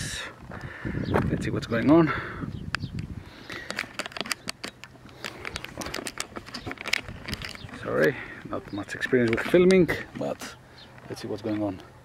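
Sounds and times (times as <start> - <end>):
recording device handling noise: 0.3 - 12.0.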